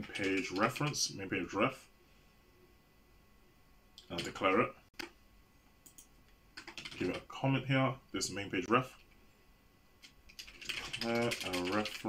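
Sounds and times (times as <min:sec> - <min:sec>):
computer keyboard typing: 0:00.0 - 0:01.0, 0:05.8 - 0:07.2, 0:10.0 - 0:12.0.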